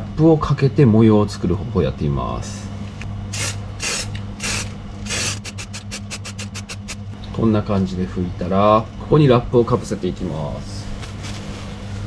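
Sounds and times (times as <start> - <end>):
aerosol spray can hissing: 3.3 - 7.0.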